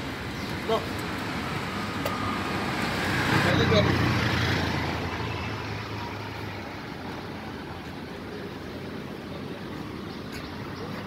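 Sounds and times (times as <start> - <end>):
road traffic: 0.0 - 11.0
vehicle engine hum passing: 0.0 - 11.0.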